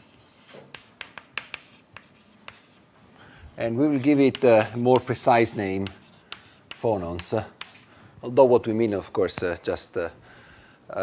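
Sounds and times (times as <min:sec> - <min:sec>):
writing taps on a board: 0:00.7 - 0:02.7, 0:05.8 - 0:07.8.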